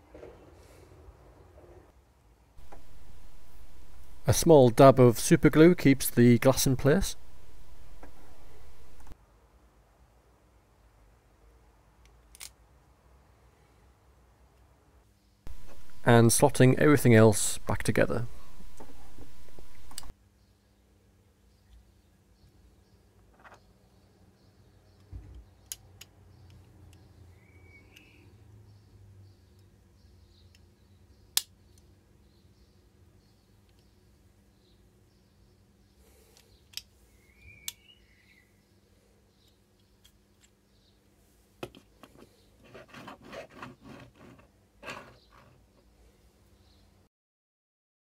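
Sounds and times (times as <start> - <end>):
plastic piece clicking on toy car: 12.0 - 12.6
sharp click: 18.5 - 20.1.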